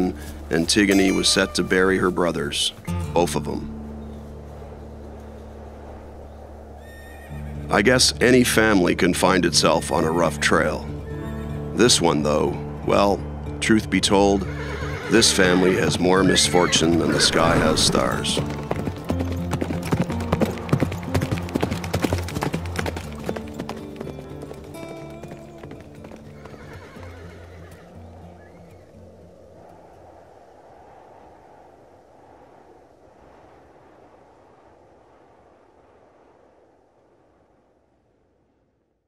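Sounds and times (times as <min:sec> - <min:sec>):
horse hooves clip-clopping: 0:00.0 - 0:02.5, 0:16.6 - 0:29.1
background music: 0:00.0 - 0:04.8, 0:07.2 - 0:29.2.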